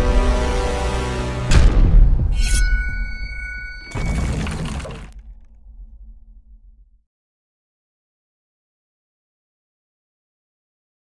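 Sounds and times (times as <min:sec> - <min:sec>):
ringing tones: 0:02.4 - 0:04.5
low rumble: 0:03.7 - 0:07.0.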